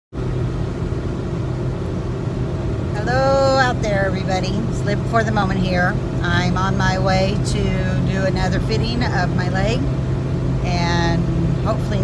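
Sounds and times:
car engine and tyres rumbling: 0.1s - 12.0s.

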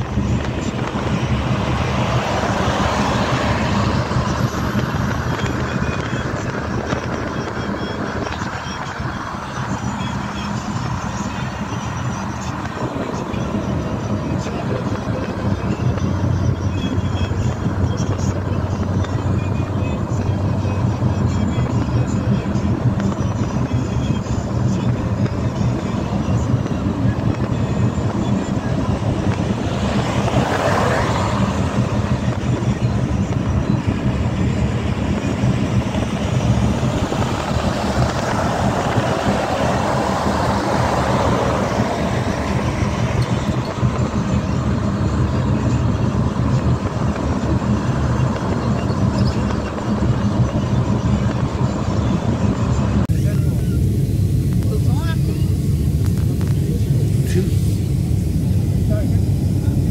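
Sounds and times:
passing traffic: 0.0s - 59.9s
vehicle road and engine noise: 0.0s - 59.9s.

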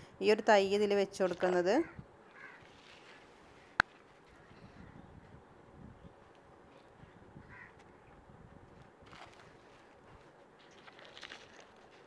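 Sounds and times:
distant crow cawing: 2.2s - 2.8s, 7.4s - 7.8s.

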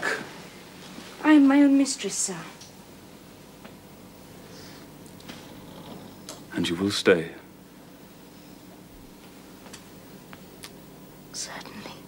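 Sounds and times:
low steady hum: 0.0s - 12.0s
soft breath: 4.4s - 5.0s.

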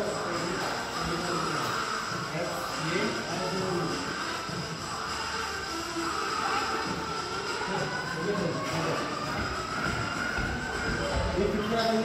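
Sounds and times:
echoing chatter of voices: 0.0s - 12.0s
steady noisy hum: 0.0s - 12.0s.

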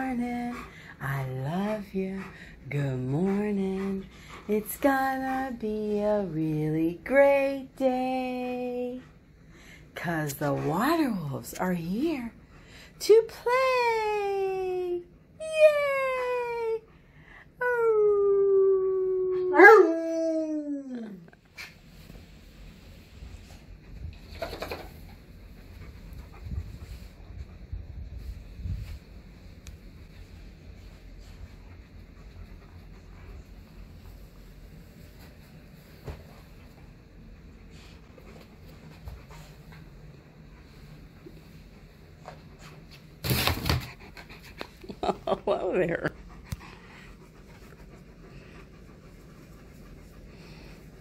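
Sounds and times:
faint low hum: 0.0s - 51.0s
dog howling: 18.9s - 21.0s.

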